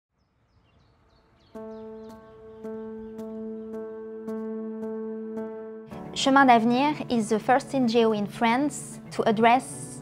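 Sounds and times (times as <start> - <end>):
small bird chirping: 0.2 - 4.0.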